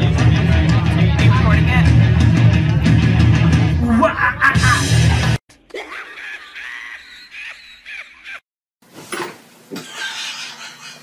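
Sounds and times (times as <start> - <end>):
cartoon hyena cackling laugh: 3.8 - 5.0, 5.7 - 8.4, 9.8 - 11.0.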